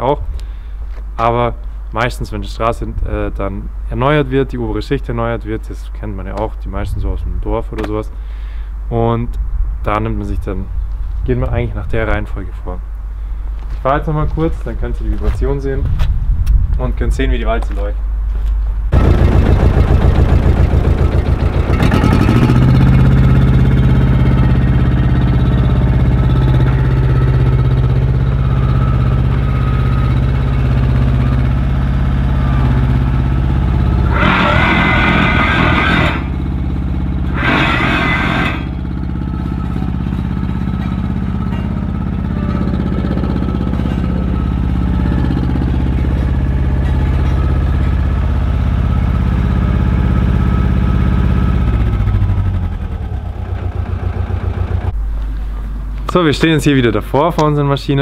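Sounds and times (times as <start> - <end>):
diesel engine running: 17.5 - 57.5
roller drum vibrating on paving: 18.9 - 49.0
loud bursts of noise: 18.9 - 55.0.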